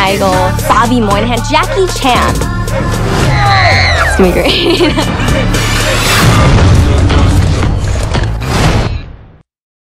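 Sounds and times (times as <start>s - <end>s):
orchestral trailer music: 0.0s - 9.4s.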